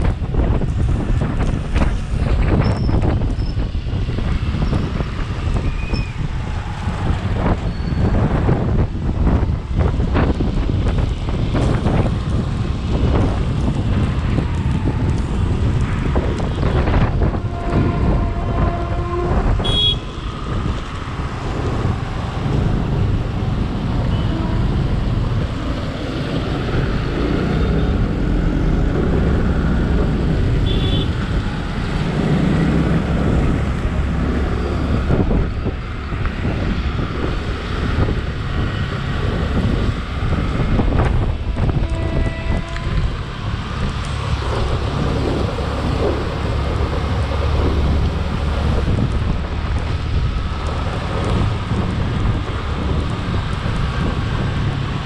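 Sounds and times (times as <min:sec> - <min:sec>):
rumble of engines and tyres: 0:00.0 - 0:55.0
wind buffeting microphone: 0:00.0 - 0:55.0.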